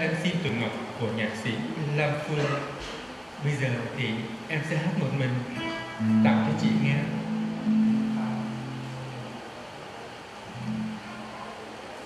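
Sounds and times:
acoustic guitar notes: 0:04.6 - 0:12.0.

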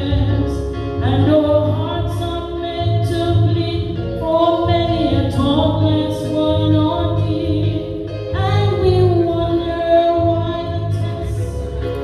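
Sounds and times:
woman singing into microphone: 0:00.0 - 0:12.0.

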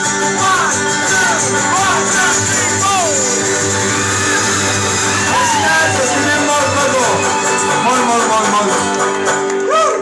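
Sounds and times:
banjo and acoustic guitars strummed: 0:00.0 - 0:09.7.

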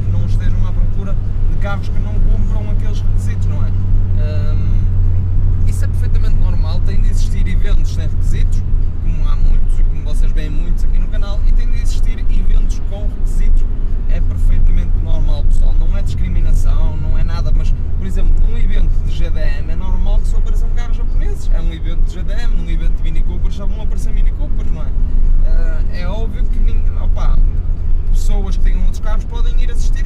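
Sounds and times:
man talking: 0:00.0 - 0:05.0, 0:05.6 - 0:30.0
car engine and road drone: 0:00.0 - 0:30.0.

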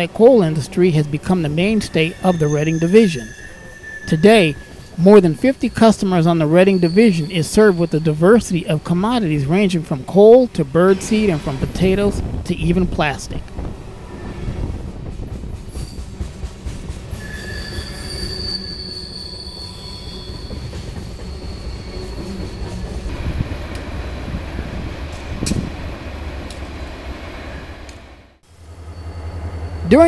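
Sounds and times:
freight train wheels rumbling: 0:00.0 - 0:30.0
high-pitched wheel squeal: 0:01.5 - 0:08.1, 0:17.2 - 0:23.0, 0:28.7 - 0:30.0
steady low rumble: 0:09.2 - 0:15.6.

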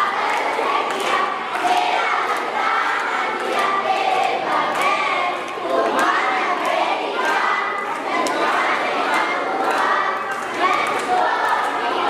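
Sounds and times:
children shouting and cheering: 0:00.0 - 0:12.0.

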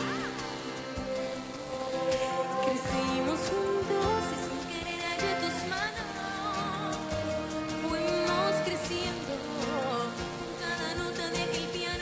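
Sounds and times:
high synth glide: 0:00.0 - 0:12.0
sustained keyboard chords: 0:00.0 - 0:12.0.

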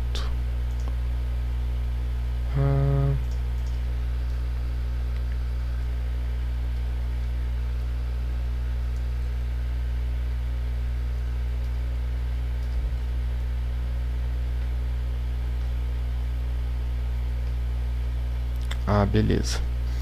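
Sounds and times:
man humming hmm: 0:00.0 - 0:00.4, 0:02.4 - 0:03.4
low electrical hum: 0:00.0 - 0:20.0.

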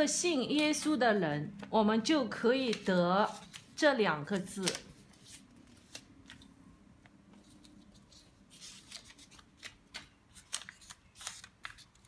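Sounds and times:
paper rustling and crackling: 0:02.5 - 0:06.5, 0:07.3 - 0:12.0.

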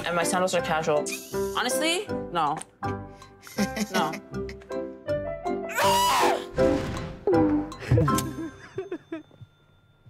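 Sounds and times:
background music: 0:00.0 - 0:09.7
woman's whiny cry: 0:05.7 - 0:06.5.

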